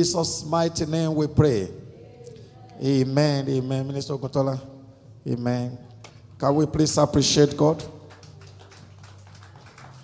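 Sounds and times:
faint scattered clapping: 8.0 - 10.0.

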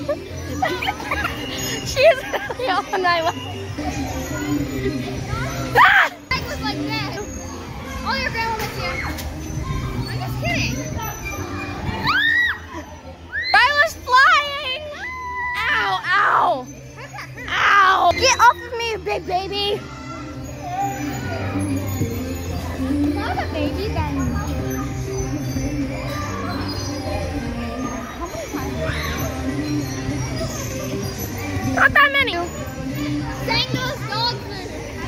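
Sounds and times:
children shouting at play: 0.0 - 18.8, 19.6 - 21.8, 22.6 - 35.0
indoor background hubbub: 0.0 - 35.0.

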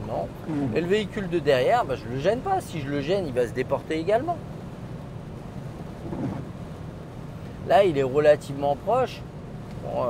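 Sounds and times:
car cabin road and wind noise: 0.0 - 10.0.

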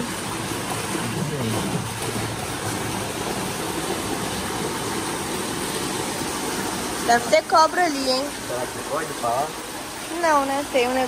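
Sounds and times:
water gushing into pool: 0.0 - 11.0.

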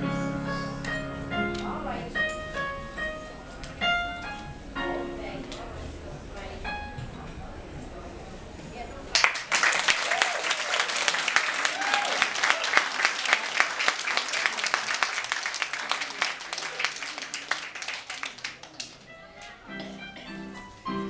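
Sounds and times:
audience applauding: 9.1 - 19.1.

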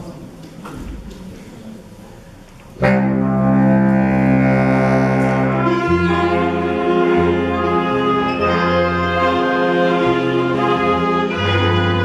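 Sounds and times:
swing orchestra chord: 2.8 - 12.0.

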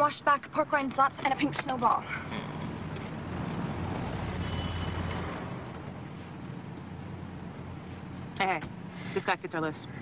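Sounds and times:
car engine rumbling: 0.0 - 9.0.

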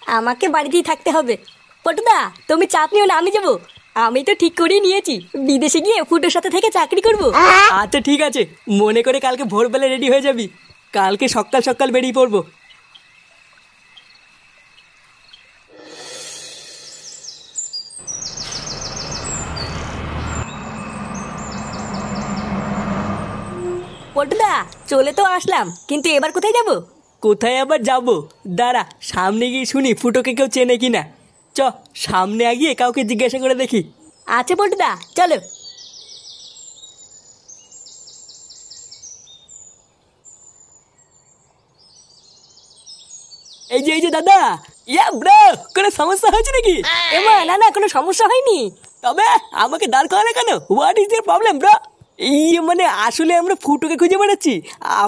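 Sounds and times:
birds chirping: 0.0 - 55.0
street noise: 6.9 - 8.2, 18.0 - 25.6, 46.3 - 47.8
bus engine running: 7.0 - 8.1, 18.0 - 25.2
faint hiss: 13.3 - 17.8.

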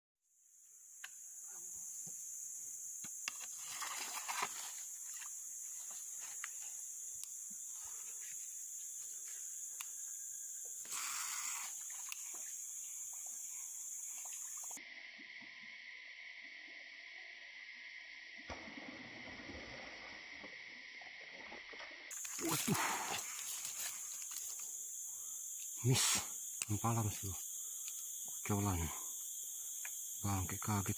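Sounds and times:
insects droning: 0.3 - 30.9
faint clicks: 27.8 - 28.1.

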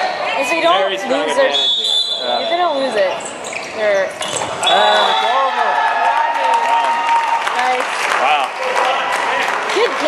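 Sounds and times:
players shouting and cheering: 4.5 - 10.0
people clapping: 5.4 - 10.0.

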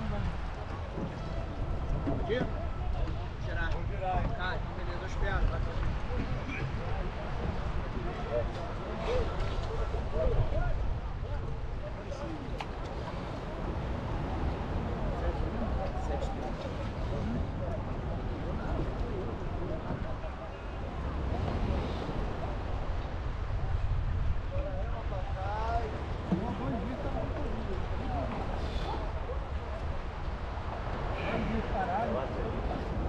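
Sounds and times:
low indistinct voices: 0.0 - 33.0
wind rumble on microphone: 0.0 - 33.0.

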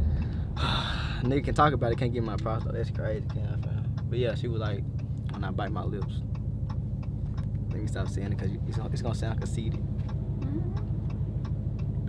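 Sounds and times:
car driving rumble inside cabin: 0.0 - 12.0
light regular ticking: 0.0 - 12.0.

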